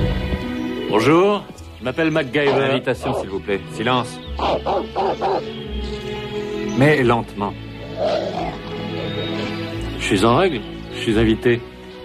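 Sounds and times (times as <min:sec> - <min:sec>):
background music: 0:00.0 - 0:12.0
dog growling: 0:07.8 - 0:09.3.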